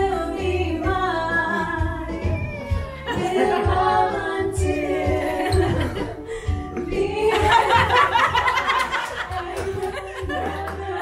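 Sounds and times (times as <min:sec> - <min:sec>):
backing music with low beat: 0:00.0 - 0:11.0
women singing: 0:00.0 - 0:11.0.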